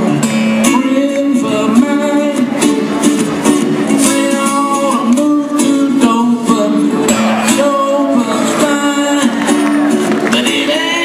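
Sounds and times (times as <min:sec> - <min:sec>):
acoustic guitars playing together: 0:00.0 - 0:11.0.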